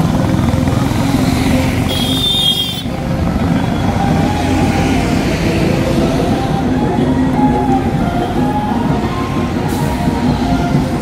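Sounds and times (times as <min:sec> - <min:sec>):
motorcycle and traffic engines rumbling: 0:00.0 - 0:11.0.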